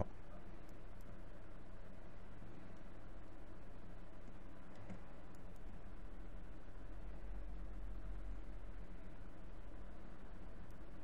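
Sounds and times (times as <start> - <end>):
electrical mains hum: 0.0 - 11.0
room noise: 0.0 - 11.0.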